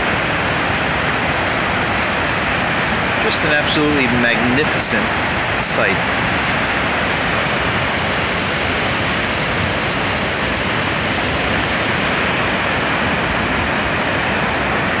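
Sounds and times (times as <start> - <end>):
loud waterfall rush: 0.0 - 15.0.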